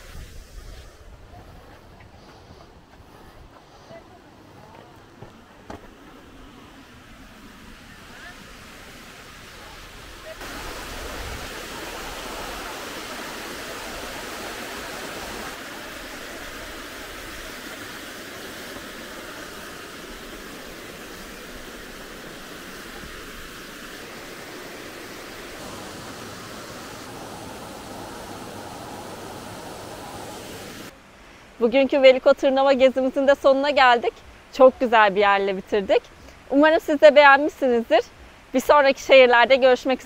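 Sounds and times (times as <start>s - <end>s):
stream running over rocks: 2.6s - 40.0s.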